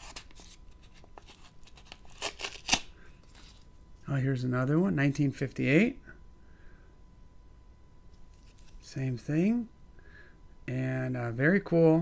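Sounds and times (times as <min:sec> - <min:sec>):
paper envelope rustling: 0:00.0 - 0:03.7.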